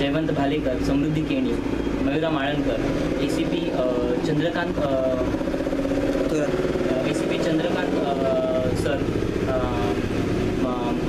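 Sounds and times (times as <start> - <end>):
man talking: 0.0 - 5.4, 6.3 - 11.0
low engine rumble: 0.0 - 11.0.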